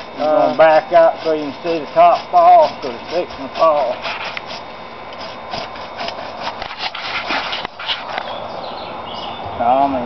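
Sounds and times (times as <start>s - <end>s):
bow saw scraping through wood: 0.0s - 8.3s.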